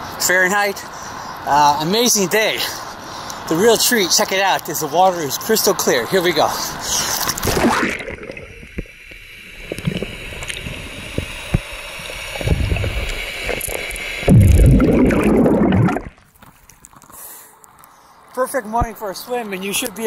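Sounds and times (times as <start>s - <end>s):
splash into water: 7.3s - 8.5s, 14.2s - 16.2s
low underwater rushing: 7.4s - 16.3s.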